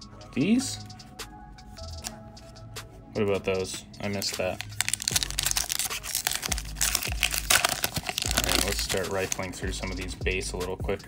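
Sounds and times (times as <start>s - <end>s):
foil wrapper crinkling and tearing: 4.2s - 9.6s.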